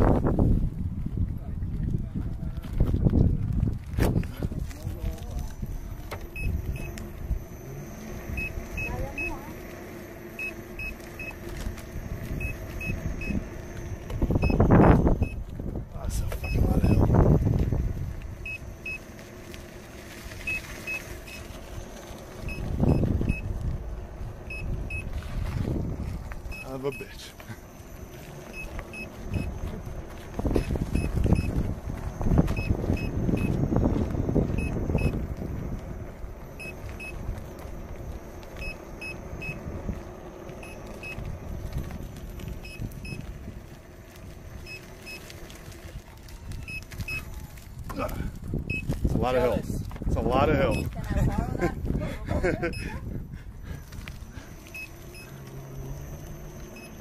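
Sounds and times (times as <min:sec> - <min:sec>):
wind rushing over microphone: 0:00.0 - 0:07.6, 0:11.8 - 0:19.0, 0:19.8 - 0:26.6, 0:28.9 - 0:44.8, 0:46.4 - 0:55.2
low road rumble: 0:00.0 - 0:57.0
faint high beeps: 0:05.0 - 0:15.4, 0:16.3 - 0:17.2, 0:18.4 - 0:19.2, 0:20.3 - 0:21.6, 0:24.4 - 0:25.1, 0:26.4 - 0:33.6, 0:34.4 - 0:35.3, 0:36.4 - 0:39.7, 0:40.6 - 0:41.3, 0:46.6 - 0:47.4, 0:54.4 - 0:57.0.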